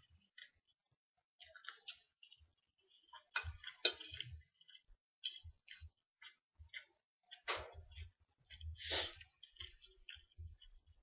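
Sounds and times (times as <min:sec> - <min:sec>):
chewing crisp food: 0:00.0 - 0:11.0.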